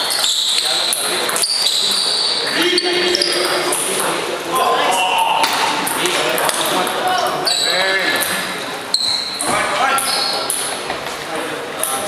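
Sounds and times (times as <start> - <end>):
background talk in echoing hall: 0.0 - 12.0.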